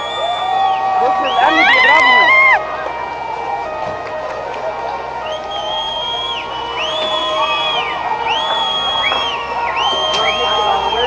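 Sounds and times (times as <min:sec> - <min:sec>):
long high whistles: 0:00.0 - 0:02.6, 0:05.1 - 0:11.0
crowd shouting: 0:00.0 - 0:11.0.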